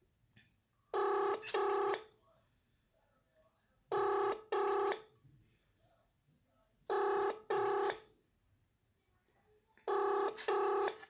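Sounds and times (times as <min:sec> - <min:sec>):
telephone ringing: 0:01.0 - 0:02.1, 0:03.9 - 0:05.1, 0:06.9 - 0:08.1, 0:09.9 - 0:11.0.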